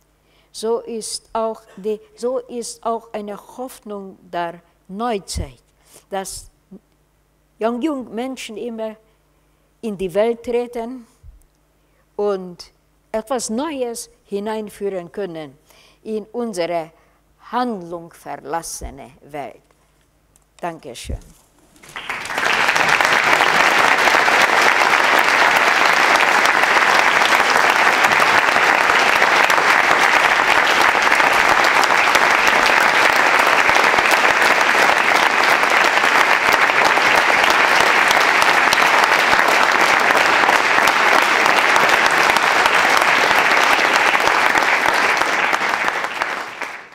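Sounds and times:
audience applauding: 21.8s - 46.9s.

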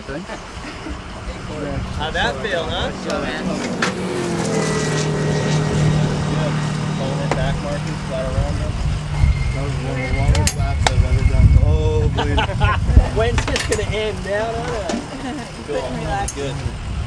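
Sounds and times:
people talking: 0.0s - 16.9s
vehicle engine running: 0.3s - 17.0s.

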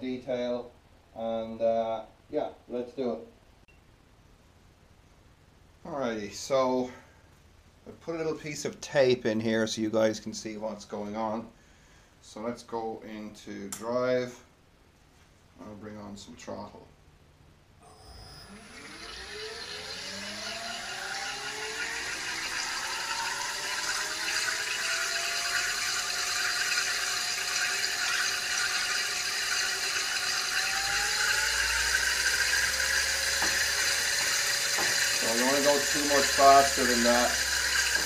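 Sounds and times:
electric motor whine rising: 17.8s - 38.0s.

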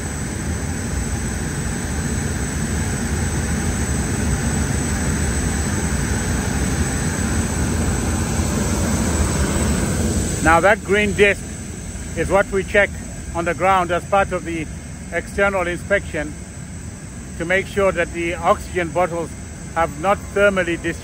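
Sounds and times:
jet aircraft noise with whine: 0.0s - 21.0s.

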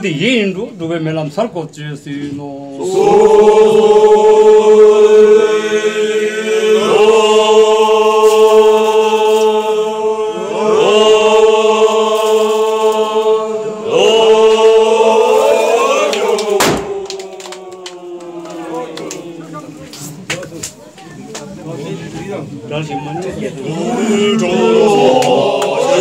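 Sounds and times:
men chanting in unison: 2.6s - 19.9s, 23.4s - 26.0s
sharp crack: 16.4s - 18.0s.

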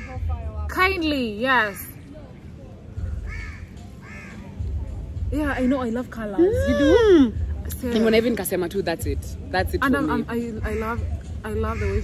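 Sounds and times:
crow cawing: 3.2s - 4.6s, 10.6s - 12.0s.

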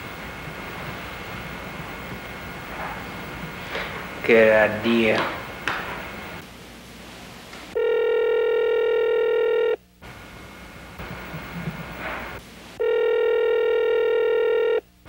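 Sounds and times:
electronic telephone ringing: 7.8s - 9.8s, 12.8s - 14.8s.

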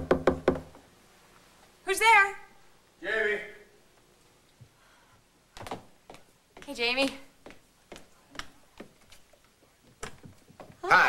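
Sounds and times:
knocking on door: 0.0s - 0.8s.

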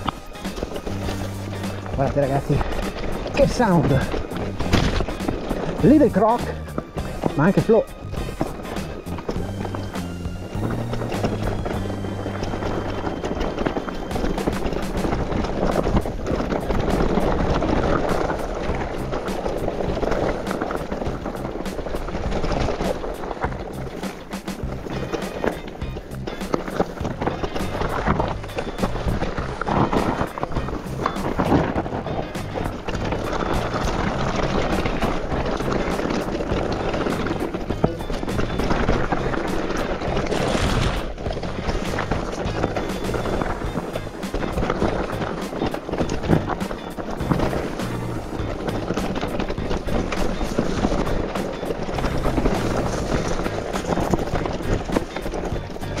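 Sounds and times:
background music with bass: 0.0s - 56.0s
mountain bike rattling on trail: 0.0s - 56.0s.

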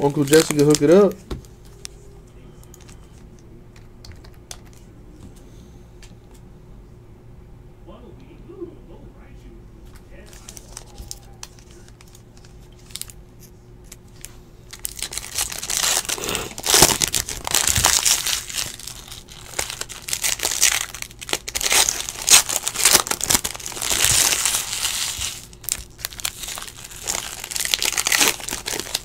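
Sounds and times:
foil wrapper crinkling and tearing: 0.0s - 1.2s, 10.2s - 13.2s, 13.8s - 29.0s.

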